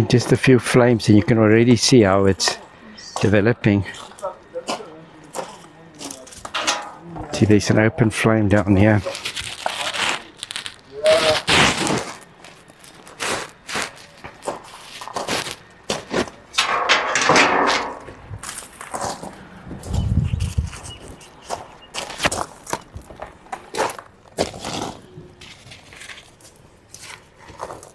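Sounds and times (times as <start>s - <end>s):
scraping rustles: 8.7s - 27.9s
wood fire crackling and popping: 9.0s - 16.0s.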